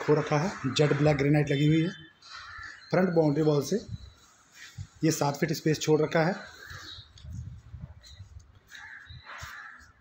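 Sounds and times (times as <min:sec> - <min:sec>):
crow cawing faintly: 0:02.2 - 0:02.9, 0:08.7 - 0:10.0.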